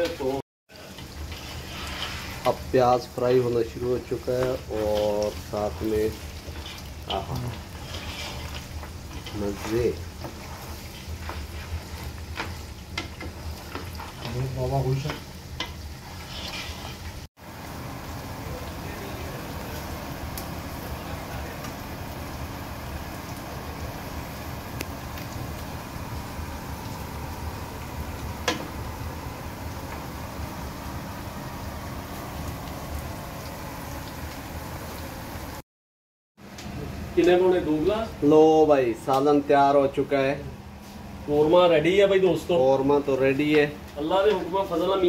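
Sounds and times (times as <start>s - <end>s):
meat and onions sizzling in oil: 0.0s - 35.6s
spatula scraping and knocking pot: 6.2s - 14.4s, 15.0s - 17.1s.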